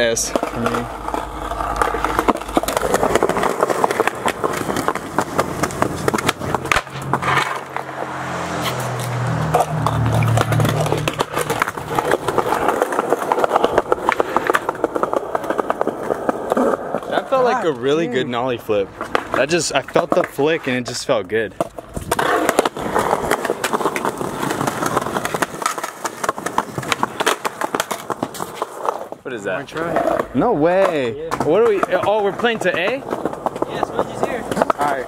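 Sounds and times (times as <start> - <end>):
skateboard rolling on concrete: 0.0 - 35.0.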